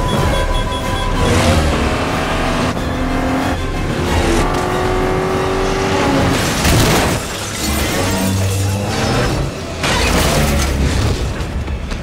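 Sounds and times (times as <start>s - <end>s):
dramatic film score: 0.0s - 12.0s
shattering debris crash: 6.3s - 8.1s.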